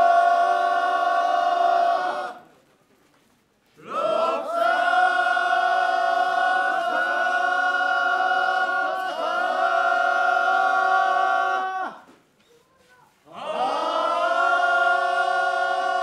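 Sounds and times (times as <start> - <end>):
men chanting together: 3.8 - 12.0, 13.3 - 16.0.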